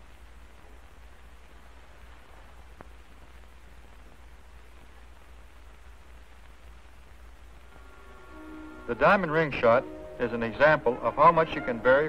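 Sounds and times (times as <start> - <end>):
film soundtrack hiss and hum: 0.0 - 12.0
faint click: 2.8 - 3.0.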